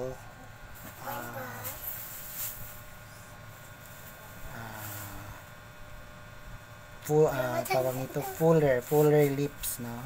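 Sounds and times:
faint electrical hum: 0.0 - 10.0
person saying uh: 1.0 - 1.8.

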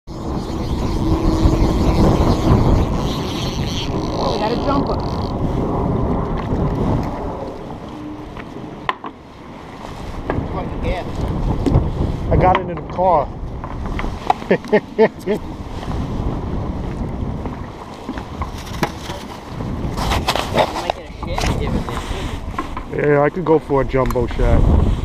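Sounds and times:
wind buffeting microphone: 0.1 - 25.0.

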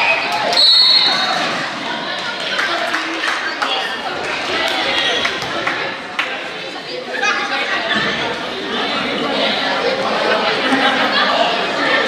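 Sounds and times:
crowd talking in echoing hall: 0.0 - 12.0.

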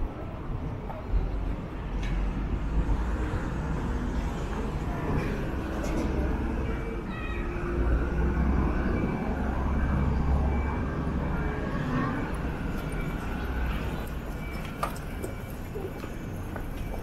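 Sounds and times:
low traffic rumble: 0.0 - 17.0
murmur of pedestrians: 3.5 - 17.0.

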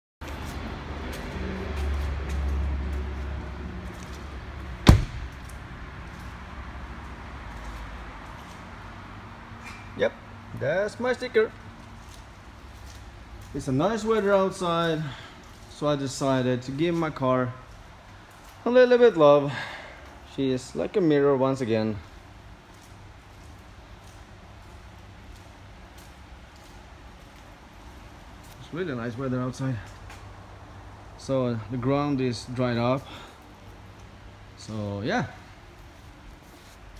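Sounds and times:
footsteps on concrete floor: 0.2 - 6.4, 11.8 - 15.8, 22.6 - 28.6, 35.7 - 36.9
car door slamming: 4.8 - 5.5.

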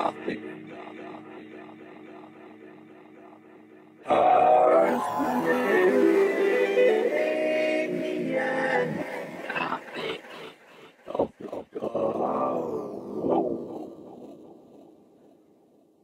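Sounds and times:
vocoder synth tones: 0.0 - 14.9.

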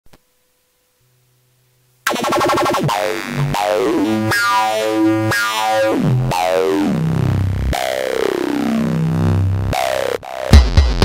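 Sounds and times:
electronic synthesizer music: 2.1 - 11.0.

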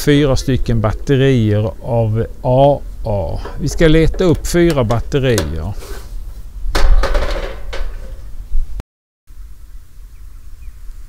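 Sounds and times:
metal grill parts knocking: 3.2 - 6.2, 6.8 - 8.3.

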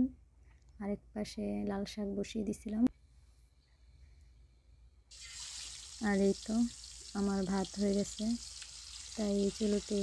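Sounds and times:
woman speaking: 0.8 - 2.9, 6.0 - 8.4, 9.2 - 10.0
hot oil sizzling: 5.1 - 10.0.

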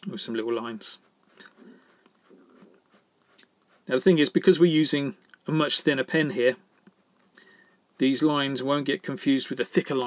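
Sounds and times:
pen scratching on paper: 0.9 - 4.2.

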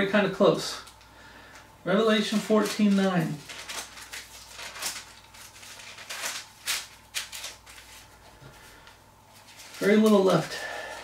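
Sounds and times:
paper pages being turned: 2.2 - 10.6.

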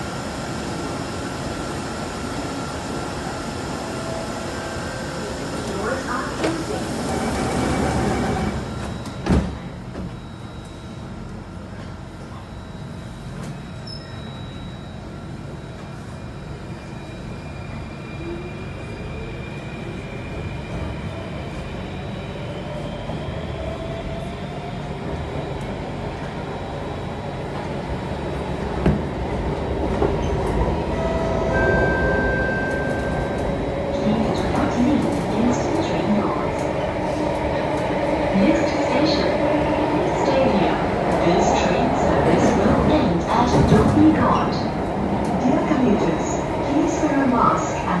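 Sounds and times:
wheels rumbling on rail: 24.6 - 48.0.

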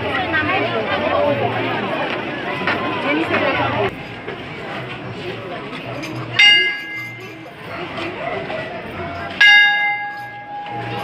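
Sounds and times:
large bronze bell ringing: 6.4 - 7.4, 9.4 - 11.0.

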